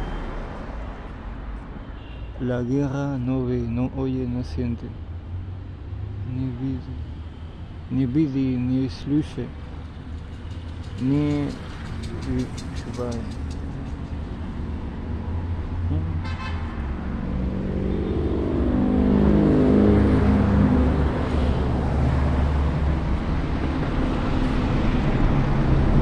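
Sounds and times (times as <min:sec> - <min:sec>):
low rumble of motor vehicles: 0:00.0 - 0:26.0
vehicle engine passing by: 0:09.8 - 0:26.0.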